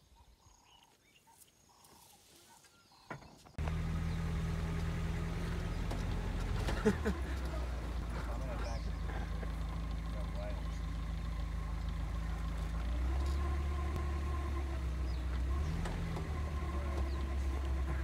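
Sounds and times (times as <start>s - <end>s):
vehicle engine idling: 3.6s - 18.0s.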